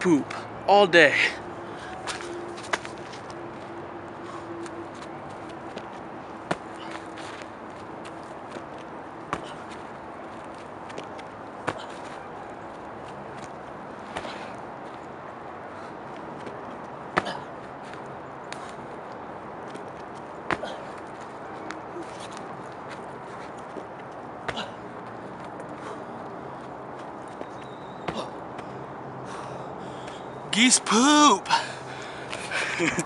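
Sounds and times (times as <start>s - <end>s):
outdoor background hiss: 29.1s - 33.0s.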